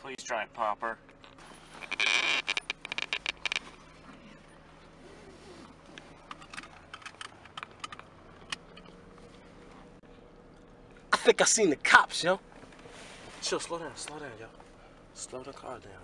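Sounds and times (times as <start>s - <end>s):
low steady hum: 0.0s - 16.0s
rapid rattling clicks: 1.8s - 3.8s.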